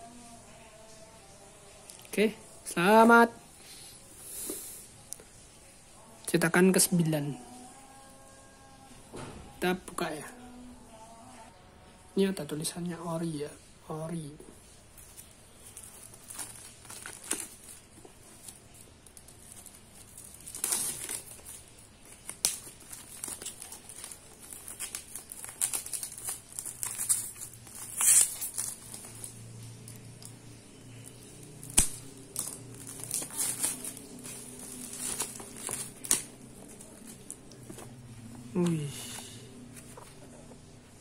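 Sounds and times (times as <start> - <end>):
plastic shrink-wrap crinkling: 13.5 - 41.0
plastic wrap ripping: 14.6 - 38.8.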